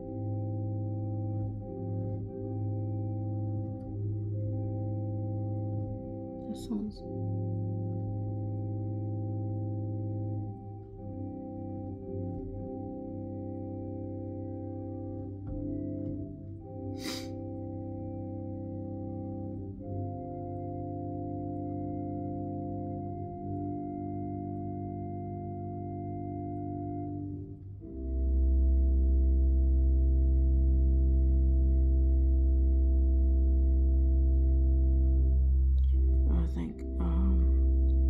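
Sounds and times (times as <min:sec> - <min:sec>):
deep organ bass note: 0:00.0 - 0:38.0
organ playing sustained chords: 0:00.0 - 0:38.0.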